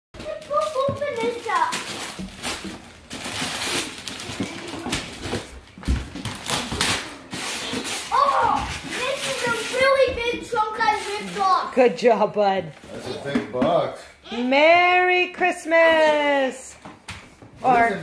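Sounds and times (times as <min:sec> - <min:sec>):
wrapping paper tearing: 0:00.2 - 0:05.6, 0:06.2 - 0:11.7
child calling out: 0:08.1 - 0:10.4.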